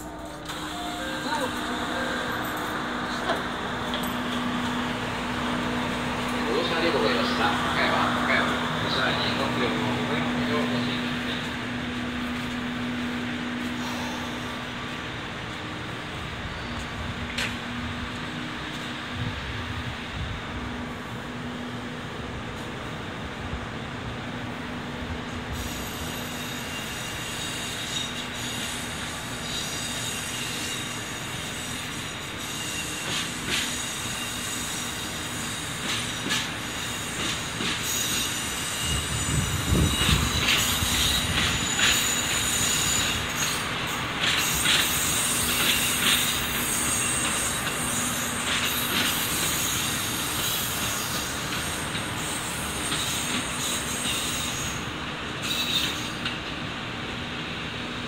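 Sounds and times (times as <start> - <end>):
train wheels squealing: 16.4 - 17.5, 25.5 - 56.6.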